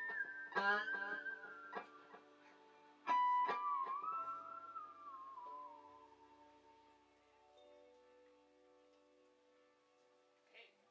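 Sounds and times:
lower guitar notes ringing: 0.0s - 7.0s.

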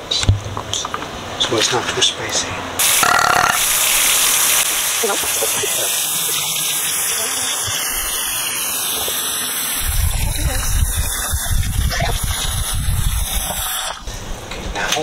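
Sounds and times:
kitchen tap running: 2.8s - 14.0s.

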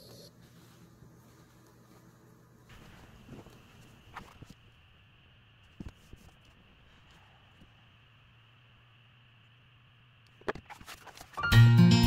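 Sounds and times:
paper rustling: 10.5s - 11.4s.

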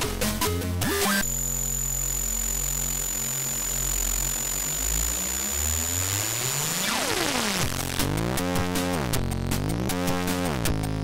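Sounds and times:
falling electronic sweep: 1.0s - 8.0s
chiptune hiss and low tones: 1.0s - 8.1s.

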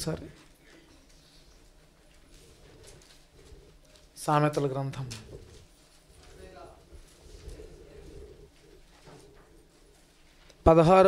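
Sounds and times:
person speaking: 0.0s - 0.8s, 4.0s - 8.6s, 10.5s - 11.0s
low cooing bird call: 7.0s - 10.2s.

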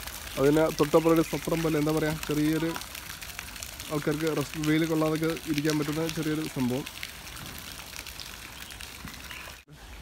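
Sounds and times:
running water hiss: 0.0s - 10.0s.

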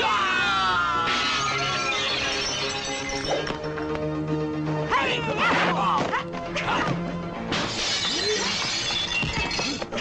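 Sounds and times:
film soundtrack music: 0.0s - 10.0s
glass shattering: 1.1s - 3.5s, 7.5s - 9.8s.

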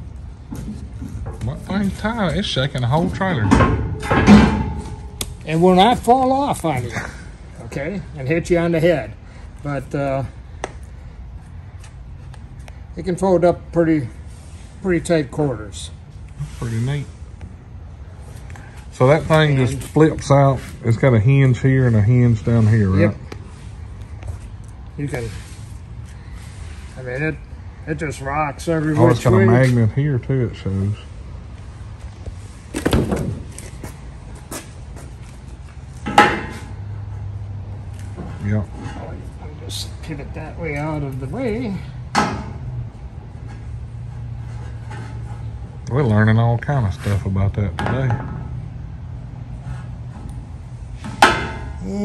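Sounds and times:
loud clack against metal: 3.0s - 5.4s, 36.0s - 36.8s.

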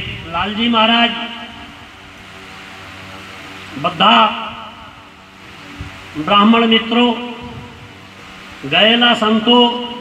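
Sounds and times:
man speaking over loudspeaker: 0.0s - 1.7s, 3.7s - 5.0s, 6.1s - 7.7s, 8.6s - 10.0s
loudspeaker low hum: 0.0s - 10.0s.

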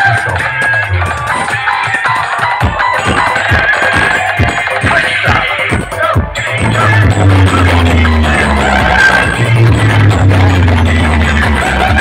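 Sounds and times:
loud music with heavy bass: 0.0s - 12.0s.

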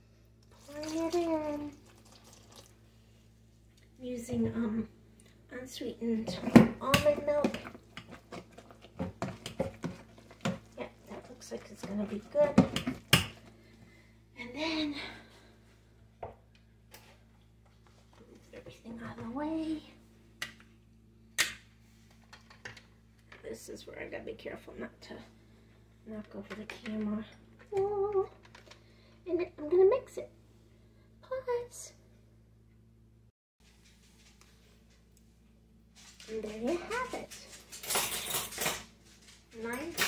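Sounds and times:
milk pouring in a thin stream: 0.5s - 2.8s.

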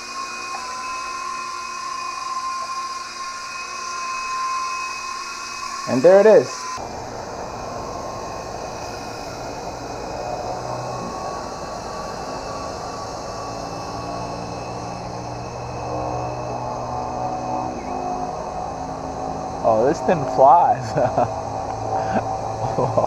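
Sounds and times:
rc helicopter rotors whirring: 0.0s - 23.0s.

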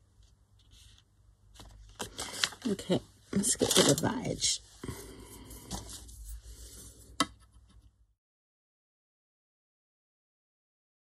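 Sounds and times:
paper and card rustling: 0.2s - 7.0s.

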